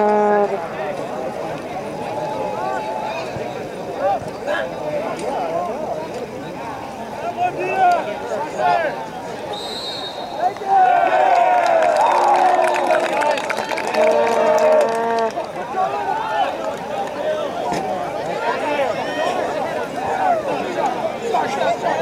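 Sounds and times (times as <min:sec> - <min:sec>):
referee's whistle: 0:09.5 - 0:10.7
people shouting: 0:10.3 - 0:12.7.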